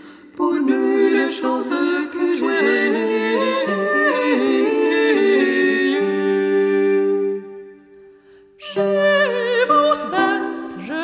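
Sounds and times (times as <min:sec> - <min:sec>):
women singing a cappella: 0:00.0 - 0:07.8, 0:08.6 - 0:11.0.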